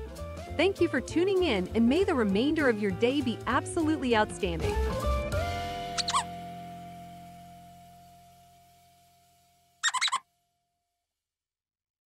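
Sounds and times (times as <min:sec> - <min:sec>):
background music chord: 0:04.8 - 0:09.6
comic animal call effect: 0:06.0 - 0:06.3, 0:09.8 - 0:10.2.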